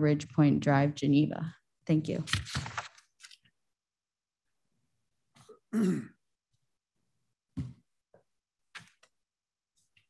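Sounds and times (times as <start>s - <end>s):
person clearing throat: 5.4s - 6.2s.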